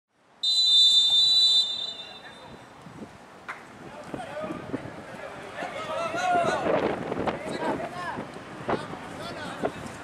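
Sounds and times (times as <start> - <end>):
referee's whistle blast: 0.4 - 2.5.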